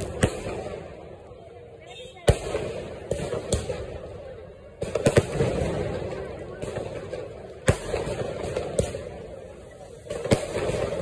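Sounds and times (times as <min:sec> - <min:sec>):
fireworks bangs: 0:00.0 - 0:11.0
rumbling crackly firework tail: 0:00.0 - 0:11.0.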